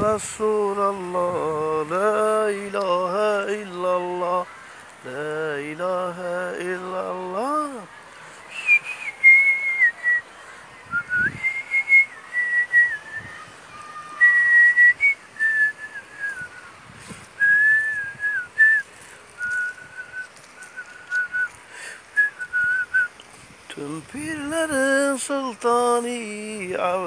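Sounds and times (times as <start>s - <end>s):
person whistling a slow tune: 8.5s - 10.2s, 11.0s - 13.3s, 14.2s - 16.6s, 17.4s - 21.5s, 22.2s - 23.2s.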